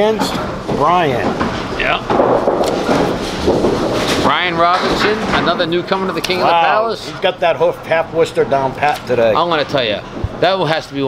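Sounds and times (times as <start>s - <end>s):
bowling balls on lanes: 0.0s - 7.2s.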